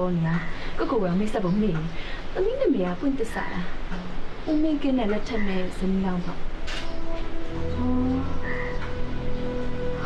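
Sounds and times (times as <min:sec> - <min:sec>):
soft held film score notes: 0:00.0 - 0:10.0
low drone: 0:05.4 - 0:10.0.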